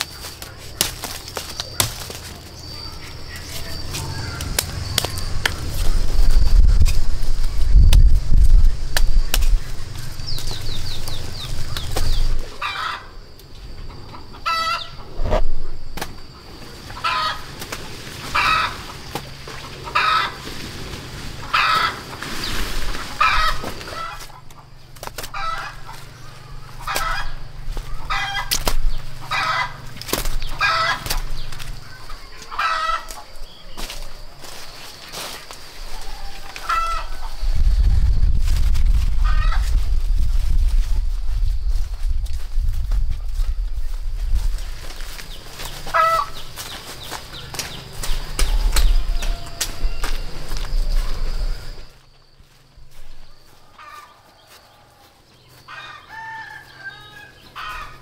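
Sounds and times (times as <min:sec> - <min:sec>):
chicken clucking: 0:13.8 - 0:15.4, 0:25.4 - 0:28.6, 0:30.5 - 0:33.7, 0:35.9 - 0:37.4, 0:45.8 - 0:46.4.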